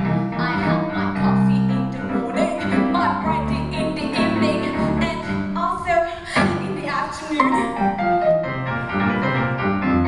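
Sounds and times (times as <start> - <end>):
show tune piano accompaniment: 0.0 - 10.0.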